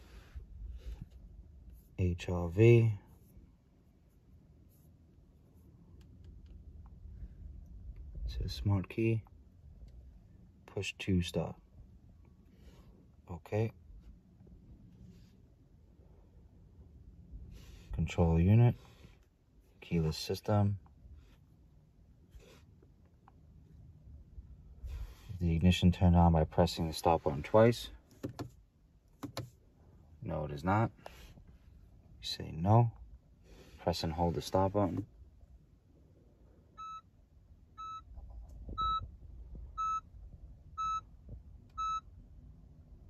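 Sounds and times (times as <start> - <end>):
car warning chime beeps: 36.7 - 38.1, 38.7 - 39.1, 39.7 - 40.1, 40.7 - 42.2.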